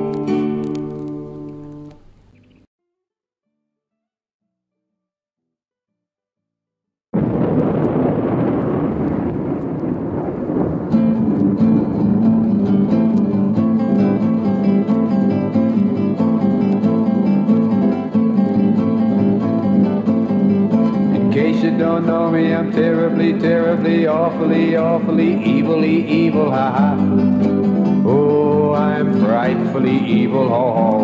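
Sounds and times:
acoustic guitar plucking: 0.0 - 2.7, 10.9 - 31.0.

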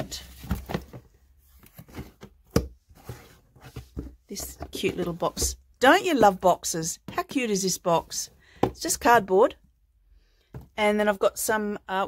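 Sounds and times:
boxes knocking and clicking: 0.1 - 9.1.

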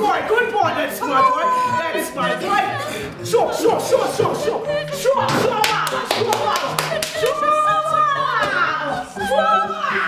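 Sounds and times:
group clapping in rhythm: 5.4 - 7.5.

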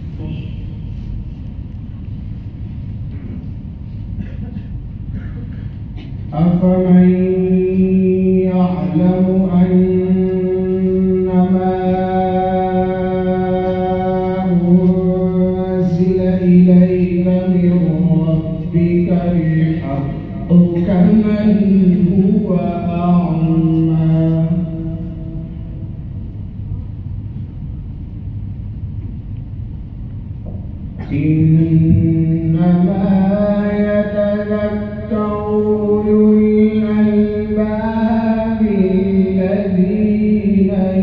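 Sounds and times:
low background rumble: 0.0 - 41.0
person chanting recitation: 6.2 - 26.2, 31.0 - 41.0.

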